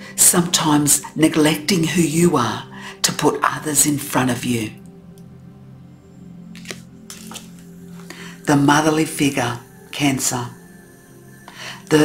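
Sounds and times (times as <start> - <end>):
soft background music: 0.0 - 12.0
card click: 6.6 - 7.6.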